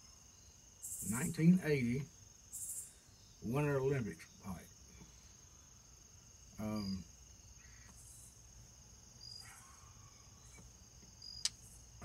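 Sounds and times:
crickets chirring: 0.0s - 12.0s.

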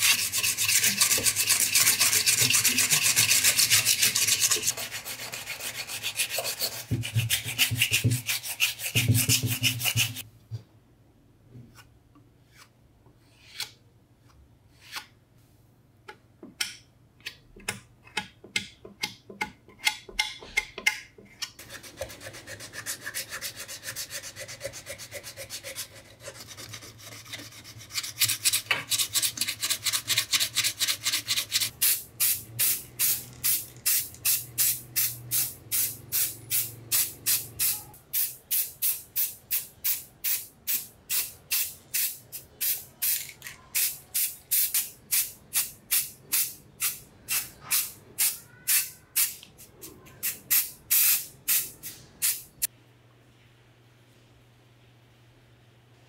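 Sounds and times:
sandpaper rubbing on metal: 0.0s - 10.2s.

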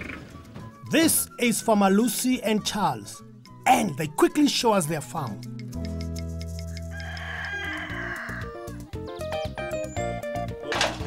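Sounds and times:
background music: 0.0s - 11.0s
rooster crowing: 6.7s - 8.6s.

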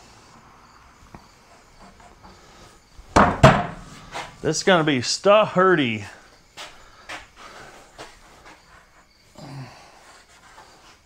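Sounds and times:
metal rack knocking on shelf: 3.2s - 3.8s.

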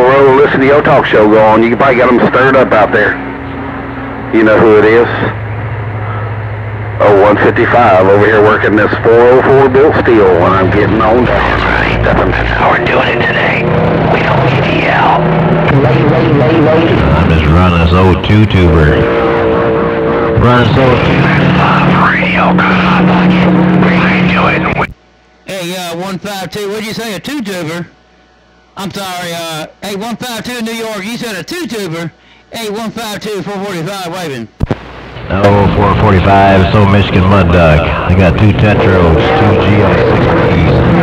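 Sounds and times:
low hum: 0.0s - 41.0s
radio static hiss: 0.0s - 41.0s.

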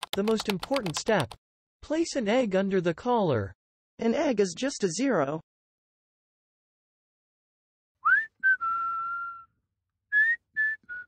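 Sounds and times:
person whistling a tune: 8.0s - 11.0s.

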